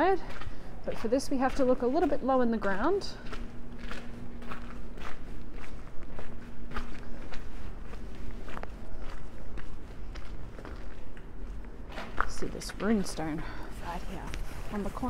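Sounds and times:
footsteps on cobblestones: 0.0 - 15.0.

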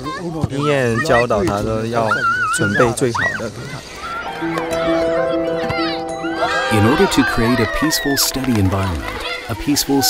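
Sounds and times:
man speaking: 6.7 - 10.0.

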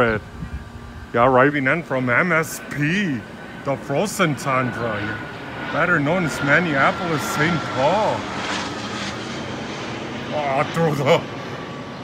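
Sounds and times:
jet passing overhead: 0.0 - 12.0.

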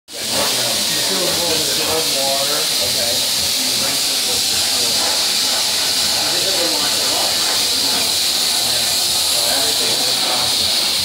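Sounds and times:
spray gun hissing: 0.1 - 11.0.

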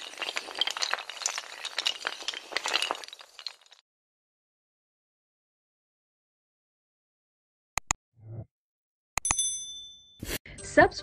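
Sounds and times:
bell-like ding: 9.2 - 10.4.

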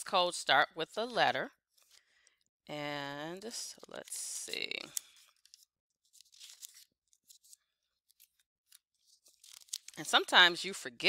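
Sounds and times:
paper pages turning: 3.8 - 10.1.

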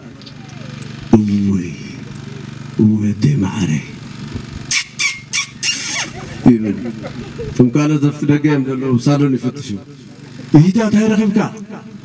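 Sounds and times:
short hissing sounds: 4.4 - 6.2
man calling over microphone: 6.4 - 7.0, 7.6 - 11.9.

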